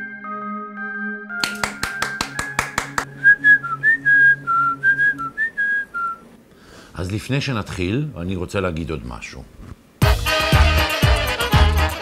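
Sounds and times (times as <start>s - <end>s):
whistled tune: 0.0s - 6.3s
hand claps: 1.4s - 3.1s.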